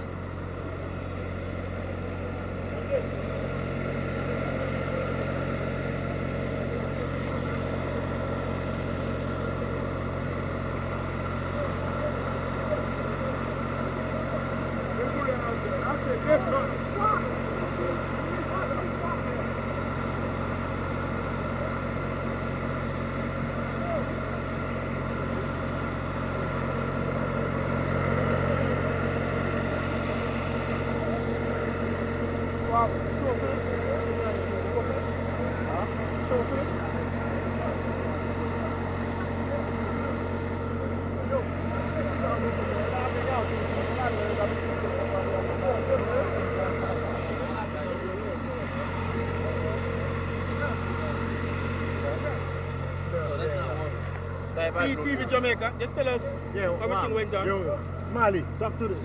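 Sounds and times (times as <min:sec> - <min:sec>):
engine idling: 0:00.0 - 0:59.0
faint crowd voices: 0:00.0 - 0:59.0.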